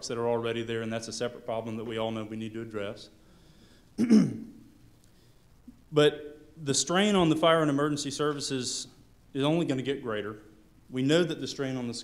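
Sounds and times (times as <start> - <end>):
man clearing throat: 4.0 - 4.6.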